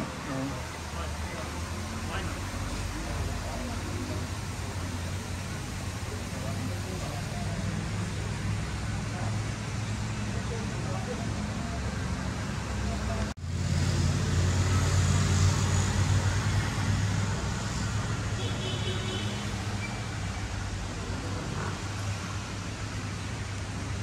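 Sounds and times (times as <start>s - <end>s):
traffic rumble: 0.0s - 24.0s.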